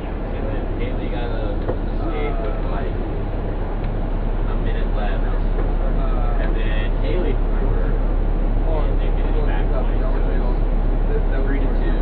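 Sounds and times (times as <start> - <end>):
bus engine idling: 0.0 - 12.0.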